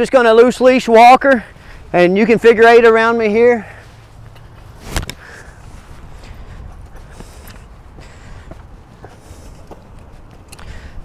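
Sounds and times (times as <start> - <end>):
steady low rumble: 3.7 - 11.0
rubber boot footsteps on concrete: 4.0 - 10.9.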